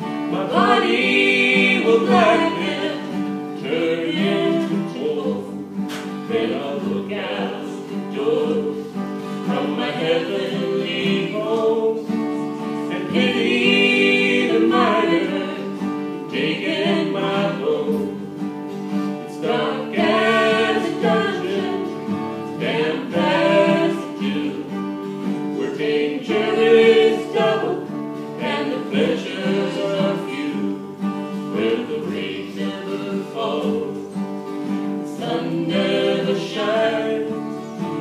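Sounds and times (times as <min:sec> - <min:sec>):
man and woman singing: 0:00.0 - 0:38.0
strummed acoustic guitar: 0:00.0 - 0:38.0.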